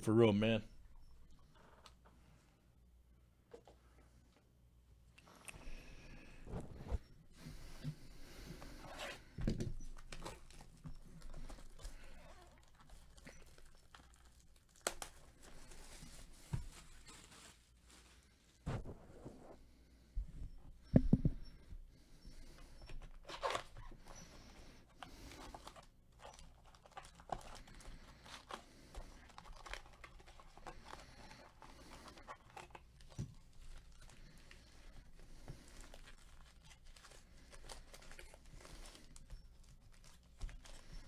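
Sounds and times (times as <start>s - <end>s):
foil wrappers crinkling and tearing: 9.9s - 18.6s, 24.9s - 41.0s.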